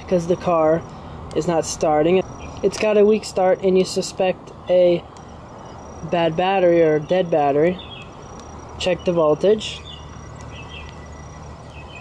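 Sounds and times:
insects chirping: 0.0s - 12.0s
steady low hum: 0.0s - 12.0s.

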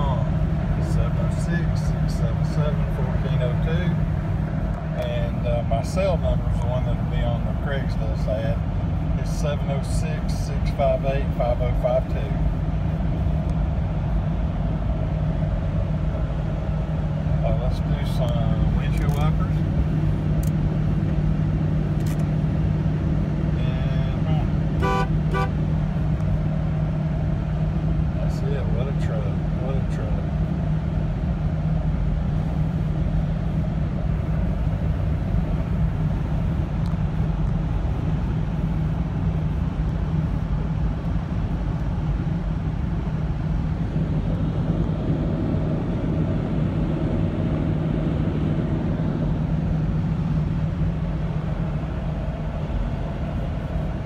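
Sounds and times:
engine and road drone: 0.0s - 54.0s.

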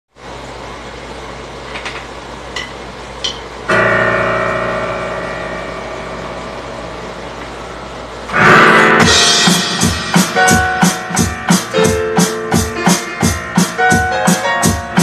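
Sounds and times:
steady low hum: 0.2s - 15.0s
digital keyboard chord: 3.7s - 15.0s.

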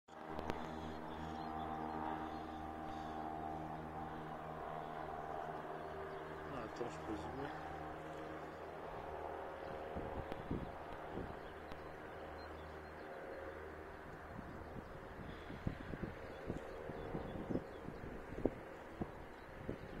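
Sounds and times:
propeller aircraft engine drone: 0.1s - 20.0s
wind buffeting microphone: 9.0s - 11.9s, 14.2s - 20.0s.

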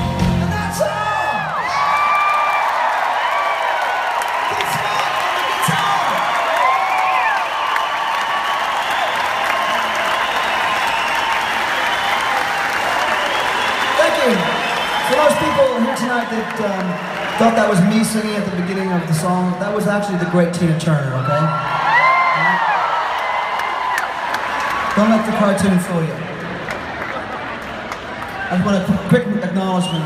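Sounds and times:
crowd cheering and applauding: 0.0s - 30.0s
whistles and whoops: 5.4s - 16.3s.

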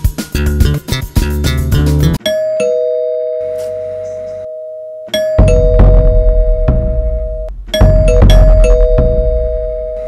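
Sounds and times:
guitar and bass music: 0.0s - 2.2s, 5.4s - 10.0s
two-note doorbell chime: 2.2s - 10.0s.

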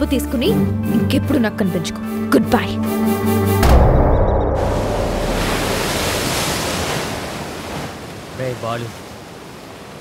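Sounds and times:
ocean waves breaking: 4.6s - 10.0s.

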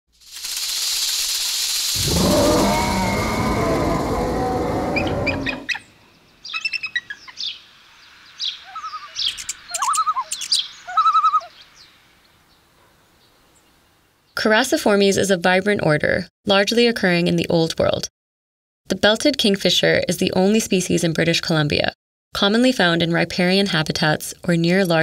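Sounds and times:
bird rattling calls: 0.2s - 5.8s
bird chirps: 4.6s - 12.6s.

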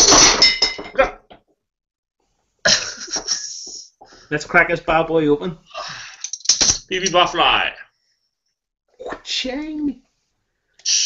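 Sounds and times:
man laughing: 2.6s - 4.0s.

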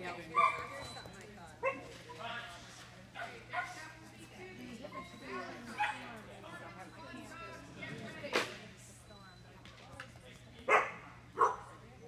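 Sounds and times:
dog barking: 10.7s - 11.8s.

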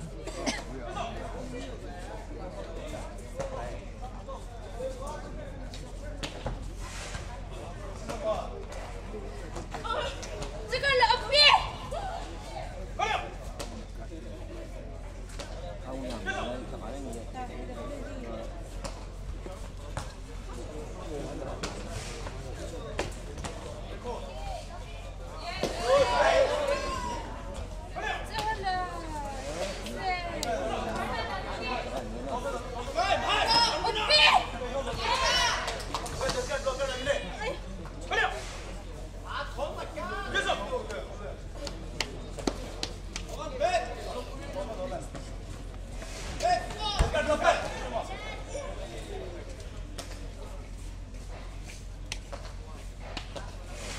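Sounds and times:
murmur of voices: 0.0s - 53.9s.

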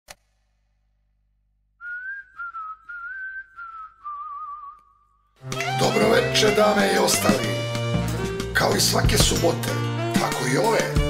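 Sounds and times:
person whistling a tune: 1.8s - 5.0s.

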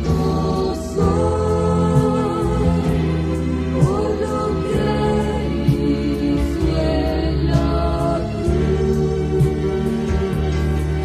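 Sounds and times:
choir singing held notes: 0.0s - 11.0s
instrumental backing with bass: 0.0s - 11.0s.

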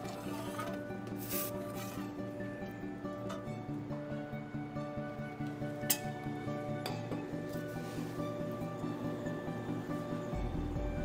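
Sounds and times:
background guitar music: 0.0s - 11.0s.

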